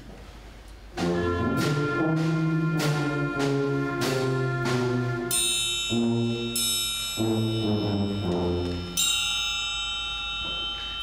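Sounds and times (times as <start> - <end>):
brass playing low chords: 1.0 - 6.6
high ringing struck note: 5.3 - 11.0.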